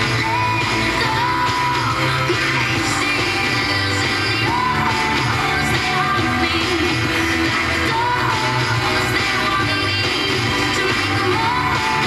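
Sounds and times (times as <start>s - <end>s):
pop song on radio loudspeaker: 0.0s - 12.0s.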